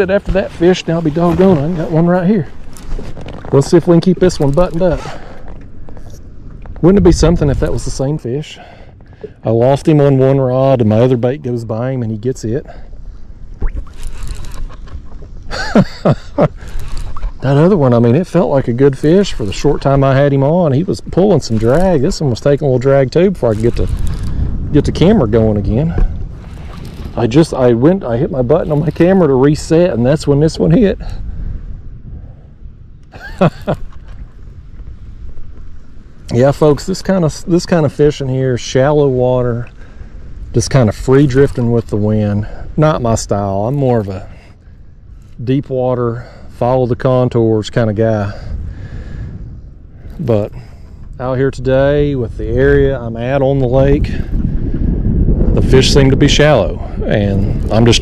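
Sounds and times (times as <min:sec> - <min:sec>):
man speaking: 0:00.0 - 0:02.6, 0:03.5 - 0:05.2, 0:17.4 - 0:23.9, 0:36.3 - 0:39.7, 0:40.6 - 0:44.3, 0:50.2 - 0:50.6, 0:55.6 - 0:58.0
wind rumbling on microphone: 0:00.0 - 0:58.0.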